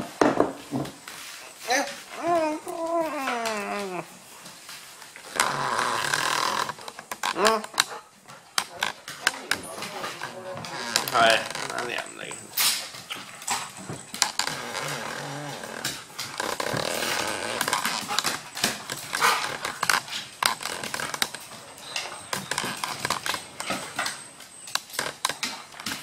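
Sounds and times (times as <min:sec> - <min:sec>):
dogs scuffling: 0:00.0 - 0:26.0
claws clicking on wooden floor: 0:01.9 - 0:26.0
dogs growling: 0:02.0 - 0:24.4.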